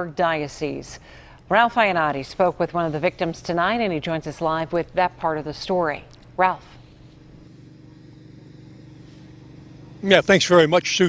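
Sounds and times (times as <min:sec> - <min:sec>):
faint steady hum: 0:00.0 - 0:11.0
distant road traffic: 0:06.6 - 0:11.0
low rumble: 0:06.8 - 0:10.8.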